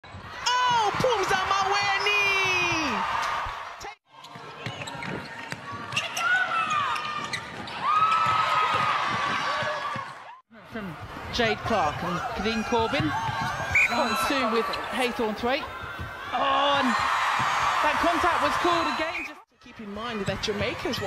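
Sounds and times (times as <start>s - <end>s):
shoes squeaking on court: 4.1s - 10.2s, 20.0s - 21.0s
ball bouncing: 12.8s - 13.7s.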